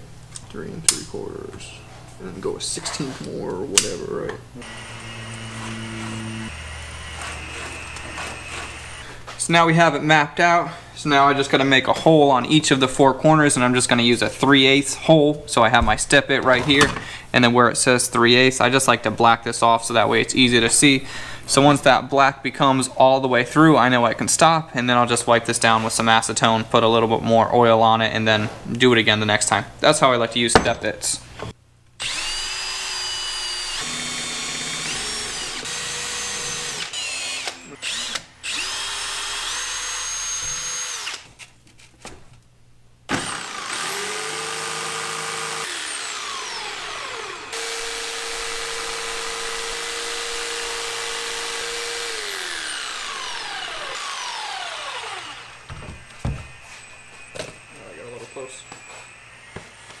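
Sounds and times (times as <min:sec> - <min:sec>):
cordless drill boring holes: 0:04.6 - 0:09.2, 0:32.0 - 0:41.2, 0:43.1 - 0:55.7
jigsaw cutting: 0:04.6 - 0:09.2, 0:32.0 - 0:41.3, 0:43.1 - 0:55.7.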